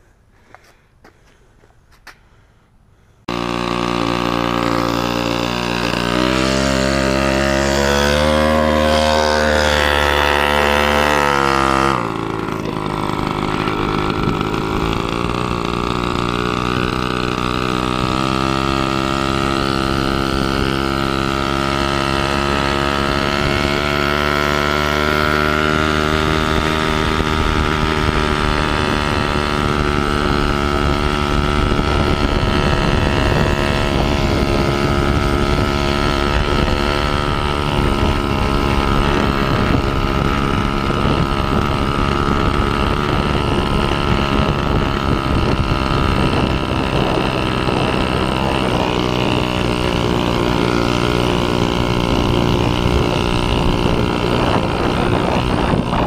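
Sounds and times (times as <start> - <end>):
small motorbike engine running: 3.2 - 56.0.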